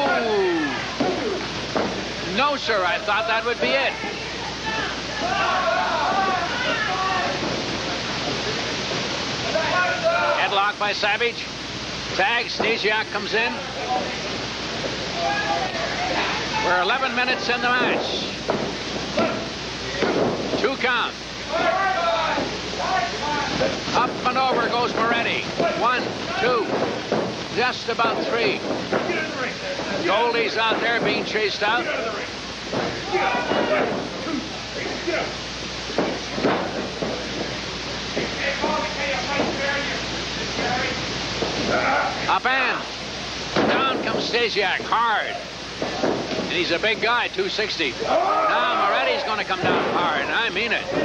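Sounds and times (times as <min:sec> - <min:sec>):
steady background noise: 0:00.0 - 0:51.0
steady rushing noise: 0:00.0 - 0:51.0
voices speaking: 0:00.0 - 0:51.0.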